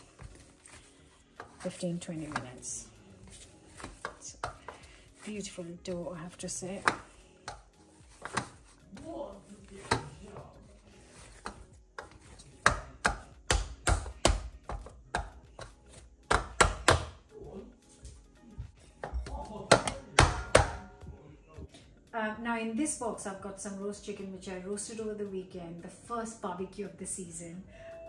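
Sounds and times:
dough knocking on steel plate: 6.8 - 8.6, 11.4 - 17.2.

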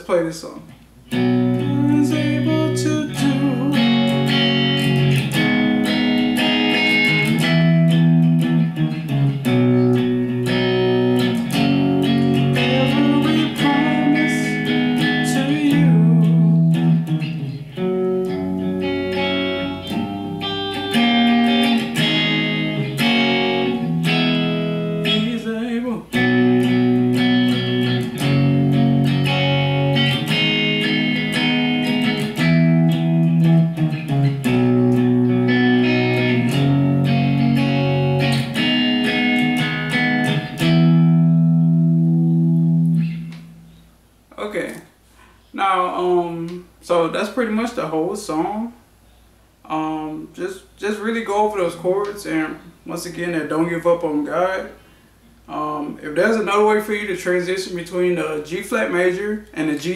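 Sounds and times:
electric guitar chords: 1.0 - 44.0.

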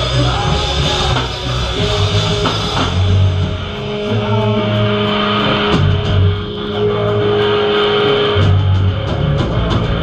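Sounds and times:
bass guitar low notes: 0.0 - 10.0
distorted electric guitar: 0.0 - 10.0
drums: 0.0 - 10.0.

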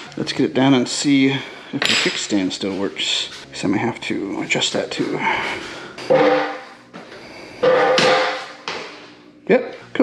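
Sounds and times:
metallic clanks: 6.0 - 6.7, 7.6 - 9.0.

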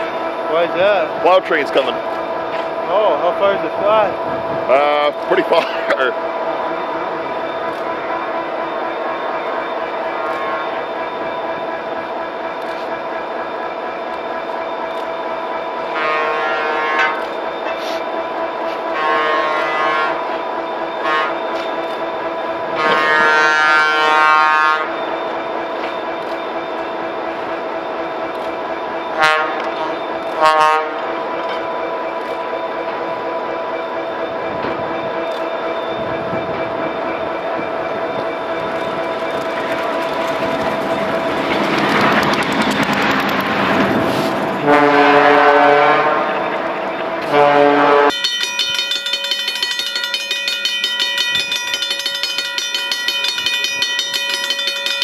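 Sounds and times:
steady hum of train: 0.0 - 55.0
train horn blasts: 10.2 - 10.9, 15.8 - 17.3, 18.7 - 20.4, 21.0 - 21.6, 22.7 - 25.0, 29.1 - 31.2, 44.6 - 46.5, 47.2 - 48.2.

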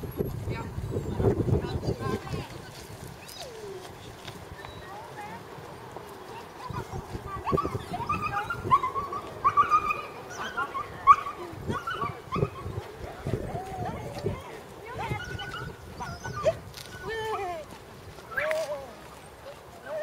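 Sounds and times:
small dog yipping and whining: 7.4 - 12.8, 15.0 - 17.6.

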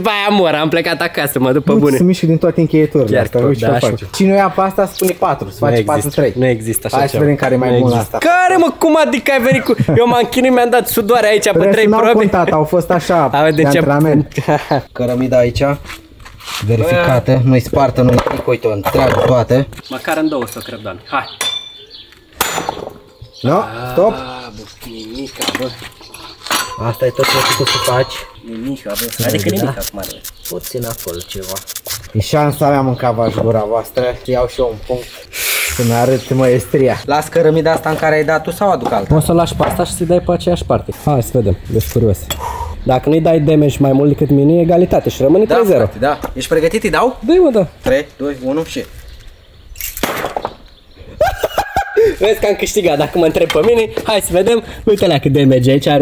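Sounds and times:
metal weapon striking brick: 22.4 - 23.0, 49.9 - 50.5.

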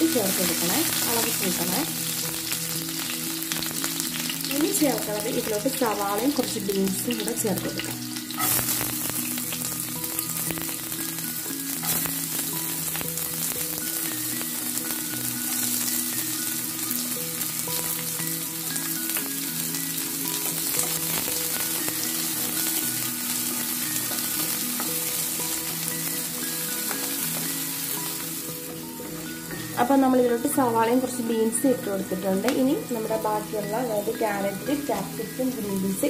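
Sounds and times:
soft background music: 0.0 - 36.0
vegetables sizzling in hot oil: 0.0 - 36.0.

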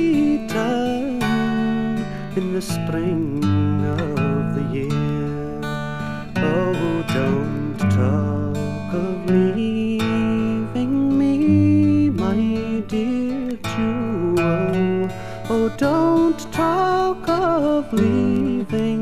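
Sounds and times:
person singing: 0.0 - 19.0
strummed acoustic guitar: 0.0 - 19.0.

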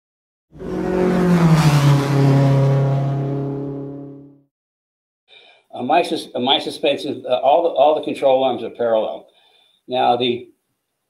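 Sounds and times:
car engine passing by: 0.6 - 4.3.

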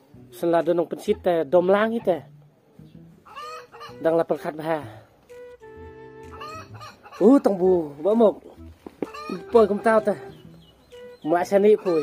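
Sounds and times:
chickens clucking: 1.0 - 4.4, 6.2 - 12.0
drawn-out hen call: 3.2 - 4.4, 6.2 - 7.9, 8.6 - 12.0.

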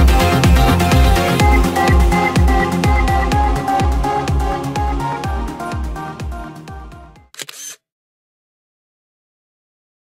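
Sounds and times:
camera shutter click: 7.4 - 7.8.

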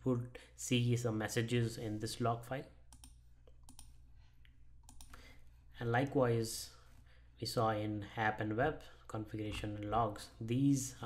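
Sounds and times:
computer mouse clicks: 2.9 - 4.0, 4.8 - 5.2.

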